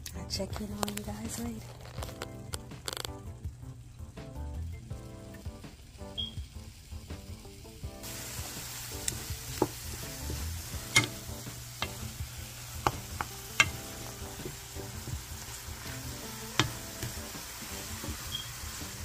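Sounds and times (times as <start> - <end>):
shrimp sizzling in a frying pan: 0.6 - 19.0
wooden spoon knocking on pan: 9.0 - 19.0.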